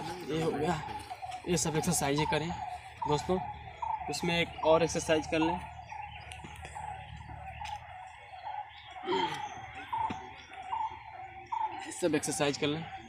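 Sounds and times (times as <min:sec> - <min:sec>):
birds chirping: 0:00.0 - 0:13.0.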